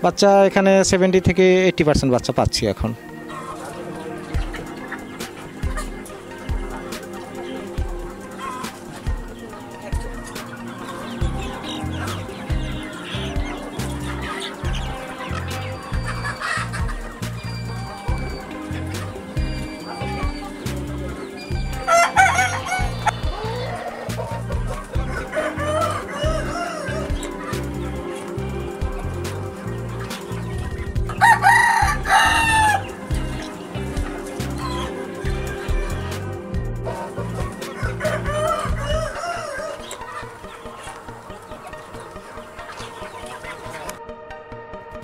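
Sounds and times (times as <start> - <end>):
music with low beat: 2.0 - 42.0
hens clucking: 2.2 - 44.0
rooster crowing: 21.8 - 24.2, 25.0 - 27.2, 31.2 - 33.0, 37.7 - 42.2.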